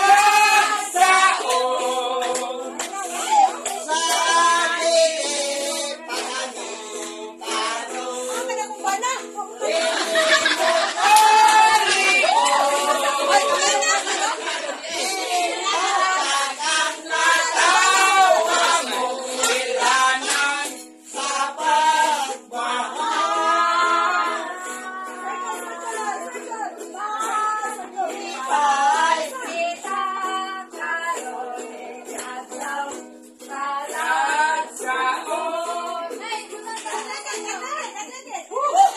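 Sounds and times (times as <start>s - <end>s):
group singing: 0.0s - 37.6s
small guitar playing: 0.0s - 38.0s.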